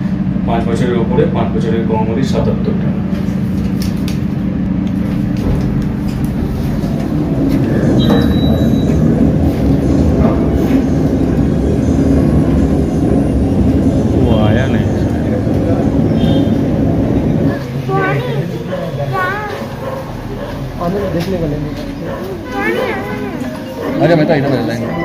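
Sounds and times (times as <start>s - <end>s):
cable car machinery rumbling: 0.0s - 25.0s
people's voices: 6.1s - 25.0s.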